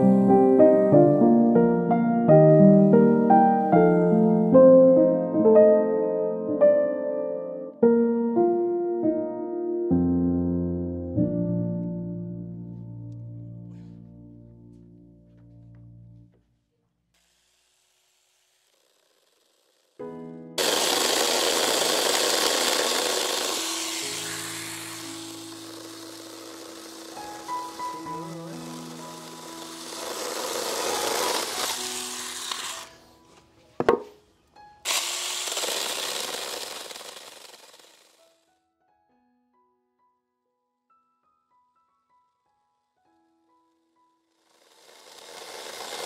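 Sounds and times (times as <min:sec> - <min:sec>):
faint piano music: 0:00.0 - 0:16.5, 0:20.0 - 0:20.6, 0:24.1 - 0:34.8, 0:38.2 - 0:44.3
power tool cutting wood: 0:17.2 - 0:34.1, 0:34.8 - 0:38.4, 0:44.3 - 0:46.0.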